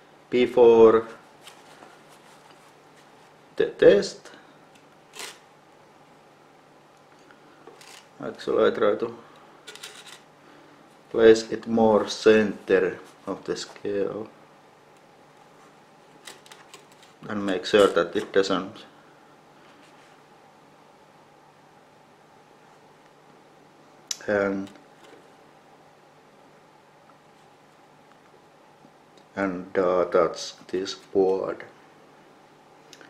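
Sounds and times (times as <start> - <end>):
faint rustling: 1.1 - 3.5.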